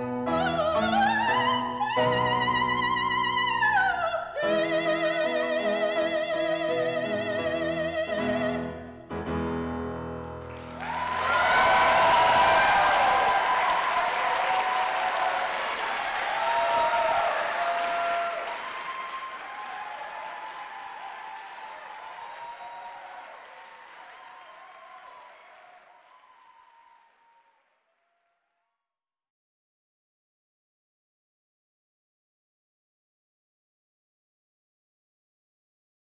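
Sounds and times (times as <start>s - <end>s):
audience applauding: 10.2s - 27.7s.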